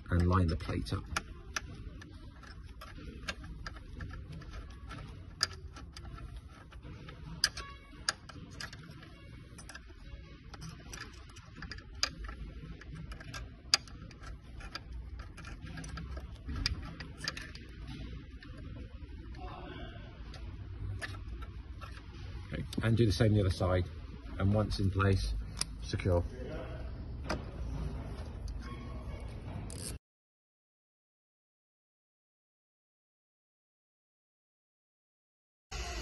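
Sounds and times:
allen key clicking on bolt: 0:10.5 - 0:17.7.

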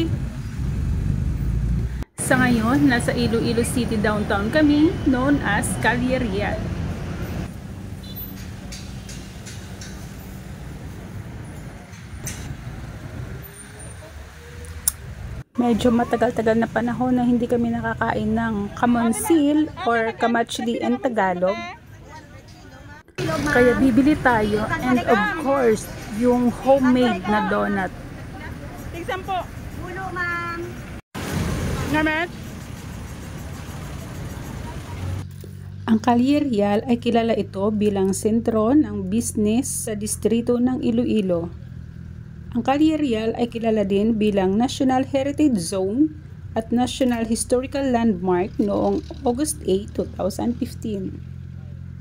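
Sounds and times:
bus engines running: 0:00.0 - 0:52.0
city road traffic: 0:00.0 - 0:52.0
faint voices of passers-by: 0:15.6 - 0:31.0, 0:31.6 - 0:36.0, 0:48.3 - 0:52.0.

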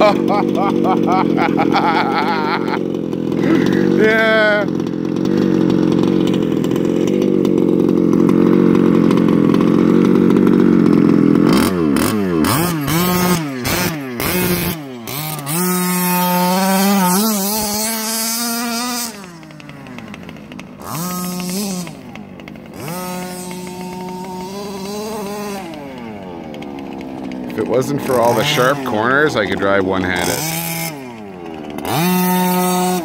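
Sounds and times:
small two-stroke engine revving: 0:00.0 - 0:33.0.

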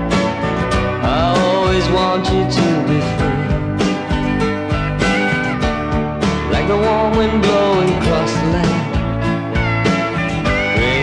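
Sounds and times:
rock band with guitars: 0:00.0 - 0:11.0
steady drum beat: 0:00.1 - 0:11.0.

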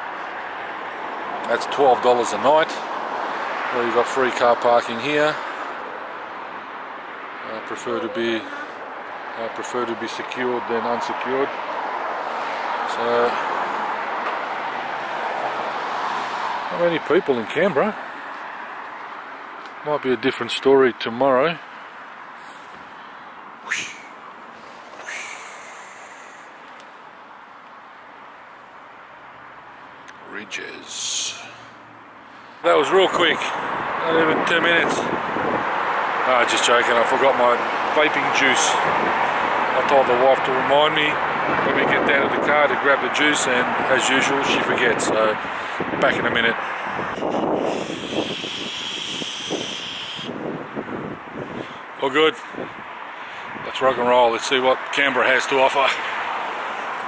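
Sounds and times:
faint road traffic: 0:00.0 - 0:57.0
outdoor background noise: 0:00.0 - 0:57.0
high-pitched animal calls: 0:23.6 - 0:24.2, 0:25.0 - 0:26.7, 0:47.5 - 0:50.3.

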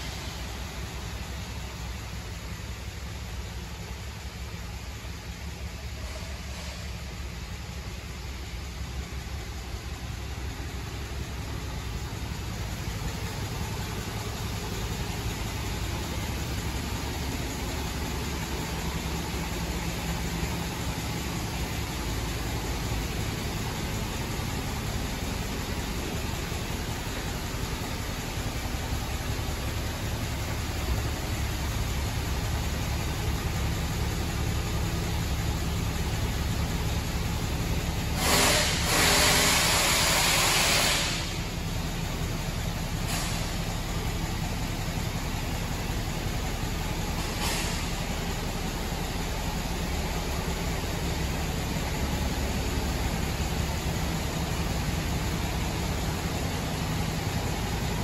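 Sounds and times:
diesel truck engine idling: 0:00.0 - 0:58.0
air hissing: 0:38.1 - 0:41.6, 0:47.2 - 0:48.2.

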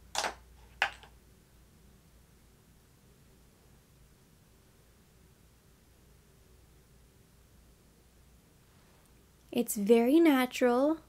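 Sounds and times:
makeup items clicking: 0:00.1 - 0:01.1.

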